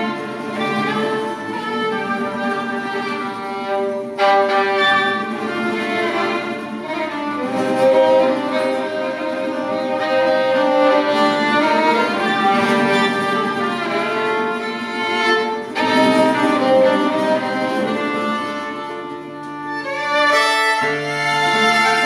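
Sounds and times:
guitar accompaniment: 0.0s - 22.0s
violin playing slow melody: 0.0s - 22.0s.

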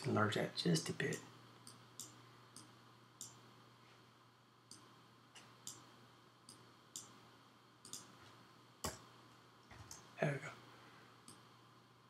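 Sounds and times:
computer mouse clicks: 1.6s - 3.4s, 4.7s - 5.9s, 6.5s - 7.2s, 7.8s - 8.1s.

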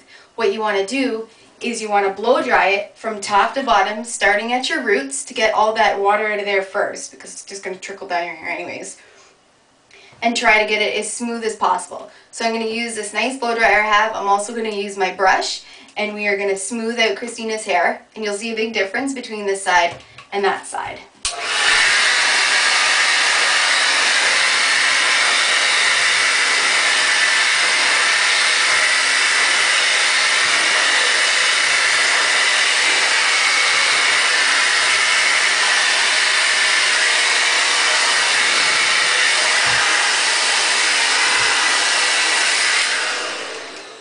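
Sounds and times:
hair dryer running: 21.2s - 44.0s.

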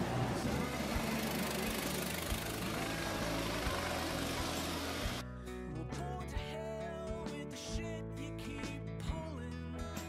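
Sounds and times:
city street noise: 0.0s - 5.2s
electric tram passing: 0.0s - 5.2s.

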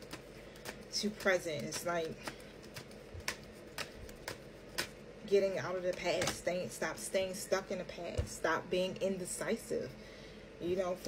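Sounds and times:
cards rustling: 0.0s - 5.0s.

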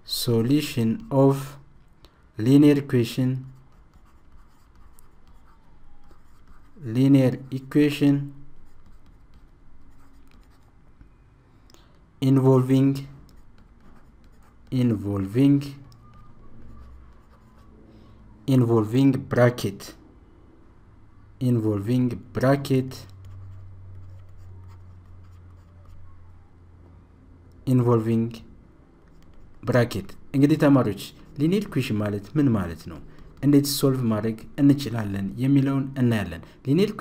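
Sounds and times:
low steady hum: 0.0s - 37.0s
stylus scratching on drawing tablet: 3.0s - 10.8s, 13.0s - 17.8s, 22.9s - 26.4s, 29.1s - 35.1s.

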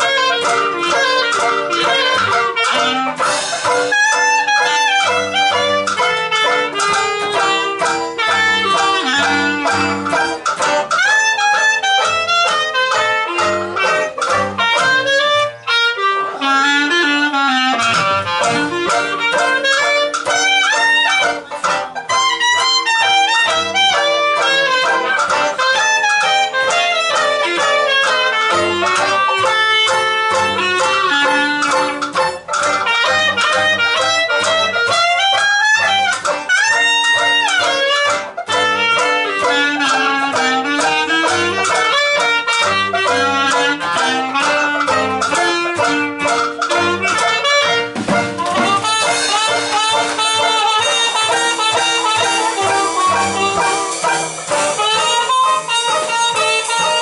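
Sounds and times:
clarinet lead line: 0.0s - 57.0s
jazz band playing: 0.0s - 57.0s.

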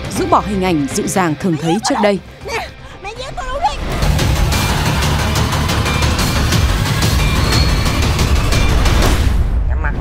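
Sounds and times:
dramatic film music: 0.0s - 10.0s.

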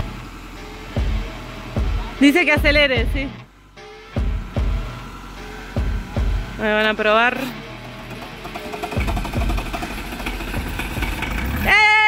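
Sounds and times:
starter motor cranking: 0.0s - 11.8s
engine running unevenly: 0.0s - 12.0s.

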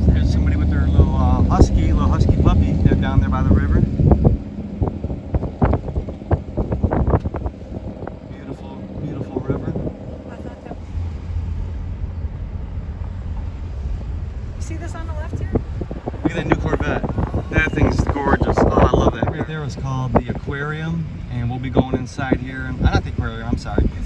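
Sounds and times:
wind rumbling on microphone: 0.0s - 24.0s
faint voices talking: 14.6s - 24.0s.

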